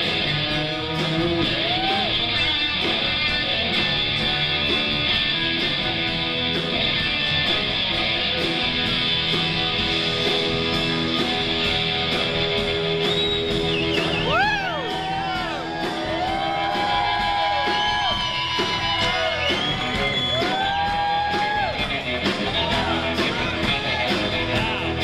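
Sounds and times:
electric guitar lead bending notes: 0.0 - 25.0
live rock band playing: 0.0 - 25.0.

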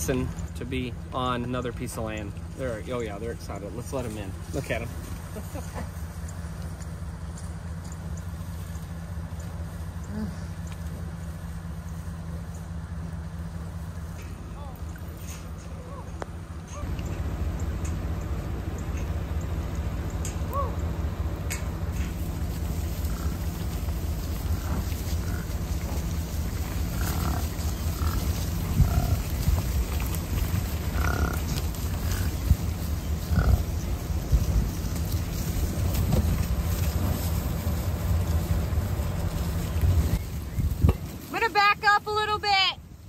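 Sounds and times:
truck engine idling: 0.0 - 43.0
bison grunting: 22.1 - 37.2.

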